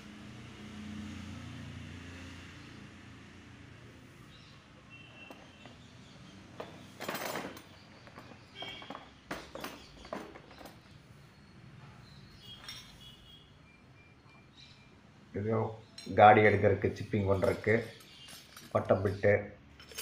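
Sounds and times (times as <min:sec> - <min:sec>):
drill scraping and knocking in case: 0:06.5 - 0:11.0.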